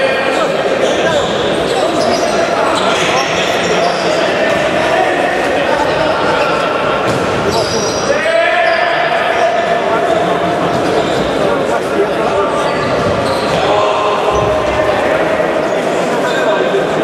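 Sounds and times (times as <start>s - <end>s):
ball kicked and bouncing in hall: 6.8s - 7.9s.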